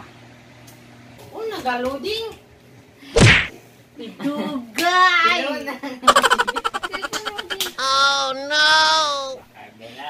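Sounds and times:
people laughing: 5.8 - 8.4
woman laughing: 5.9 - 9.2.

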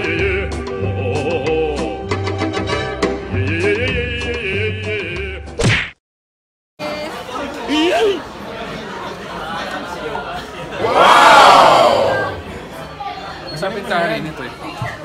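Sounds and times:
indistinct chatter of voices: 6.8 - 15.0
loud drawn-out voice: 10.8 - 12.4.

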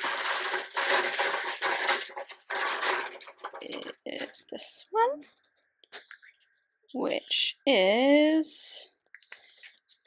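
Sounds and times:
plastic capsules rustling and rattling: 0.0 - 4.8.

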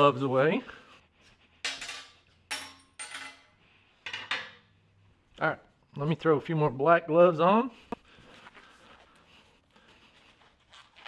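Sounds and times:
metallic clinks on steel table: 1.7 - 3.5.

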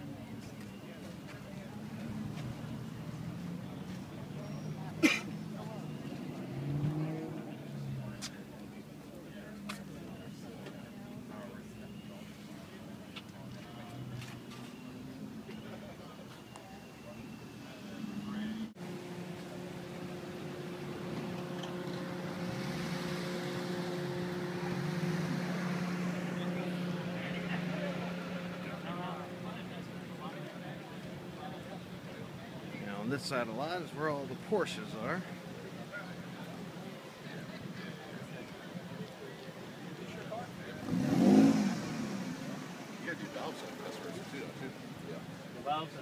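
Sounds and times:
people talking in background: 0.0 - 46.0.

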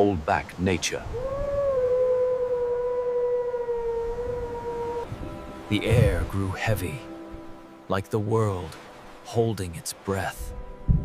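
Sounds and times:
surf rumble: 0.0 - 11.0.

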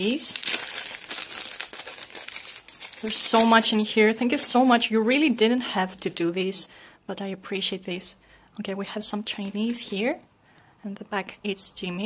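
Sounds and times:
plastic sleeve crinkling: 0.0 - 6.2, 9.3 - 10.1.

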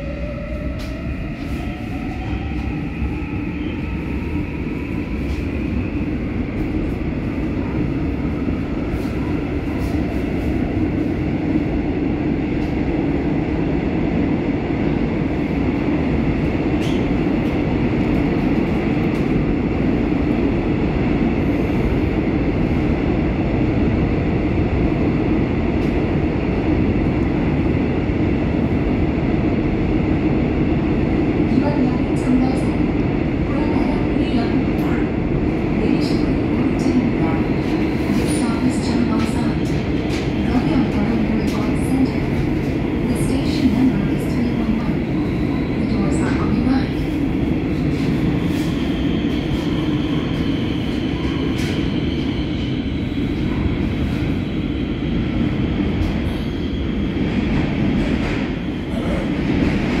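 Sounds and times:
subway wheels rumbling on rail: 0.0 - 60.0.

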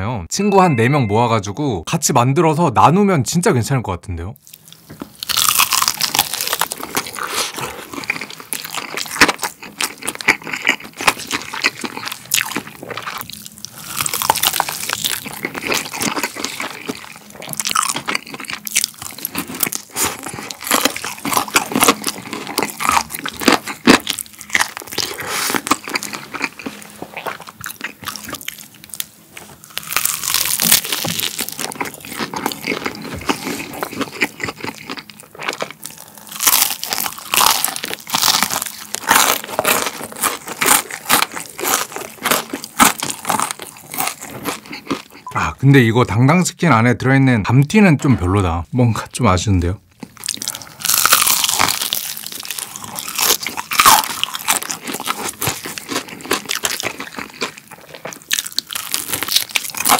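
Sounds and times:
crunchy chewing of fried chicken: 4.4 - 45.3, 50.0 - 59.9.

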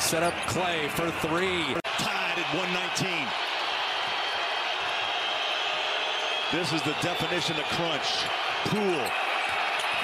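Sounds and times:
arena crowd hubbub: 0.0 - 10.0.

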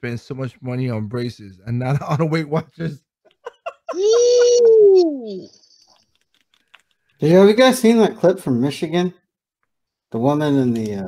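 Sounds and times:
man laughing: 1.9 - 5.4
faint clicks: 5.8 - 7.2.

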